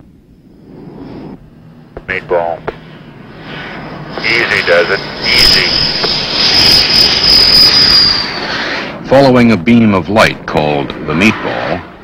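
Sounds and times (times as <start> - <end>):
jet engines with high whine: 0.0 - 12.0.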